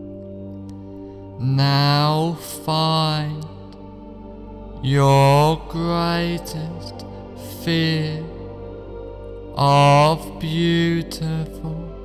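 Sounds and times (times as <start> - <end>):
new-age music with held tones: 0.0 - 12.0
slow chant-like voice: 0.0 - 12.0.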